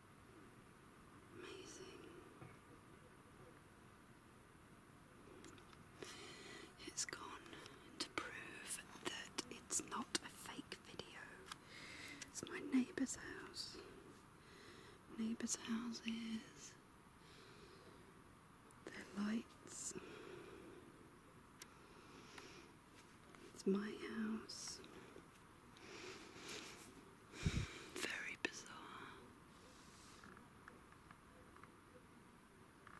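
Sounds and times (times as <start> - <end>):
person whispering: 1.4 - 2.3, 6.8 - 11.6, 12.2 - 14.2, 15.1 - 16.8, 18.8 - 20.4, 23.5 - 25.0, 27.5 - 30.4.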